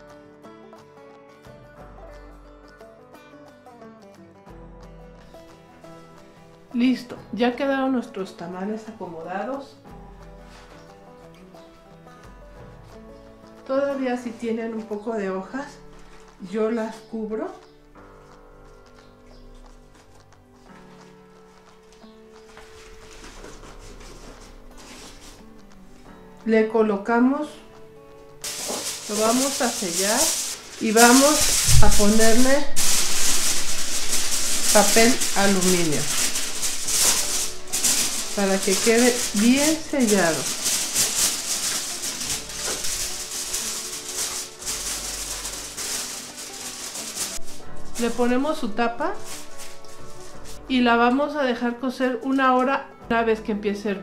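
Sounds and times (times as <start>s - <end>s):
soft background music: 0.0s - 54.0s
aluminium foil crinkling: 15.8s - 16.4s, 19.9s - 26.1s, 28.4s - 50.7s
dry corn husks rustling: 22.4s - 25.6s, 28.4s - 50.8s.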